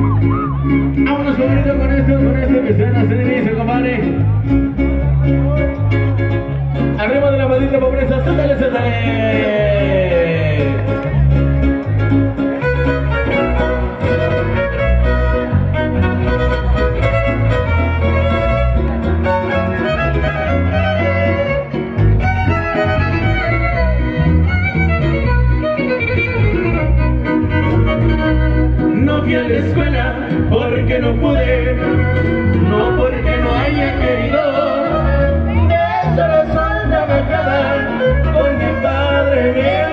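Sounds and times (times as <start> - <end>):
guitars: 0.0 - 39.9
violin lead: 0.0 - 39.9.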